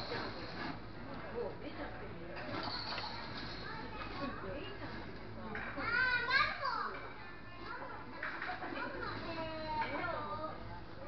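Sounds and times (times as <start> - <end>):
room chatter: 0.0 - 11.0.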